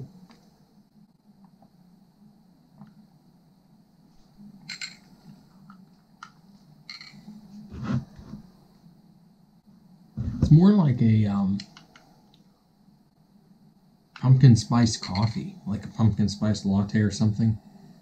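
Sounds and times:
faint low room hum: 0:00.0 - 0:18.0.

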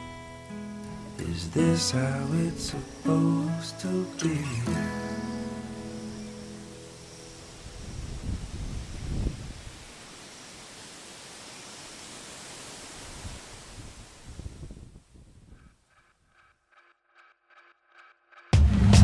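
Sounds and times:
guitar chord ringing: 0:00.0 - 0:07.5
outdoor hiss: 0:00.0 - 0:15.6
wind buffeting microphone: 0:07.4 - 0:10.0, 0:13.0 - 0:15.7.

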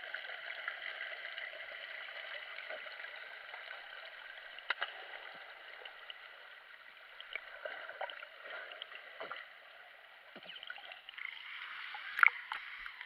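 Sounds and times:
muffled underwater hiss: 0:02.6 - 0:13.0.

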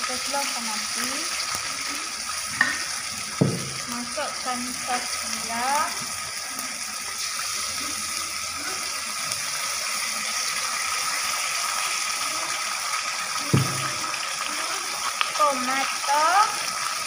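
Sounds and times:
sauce sizzling in a wok: 0:00.0 - 0:17.0
thump: 0:03.4 - 0:03.8, 0:13.5 - 0:14.0.

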